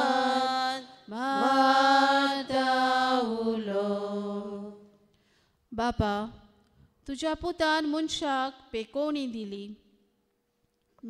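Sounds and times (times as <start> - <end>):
person chanting a sung prayer: 0.0 - 4.8.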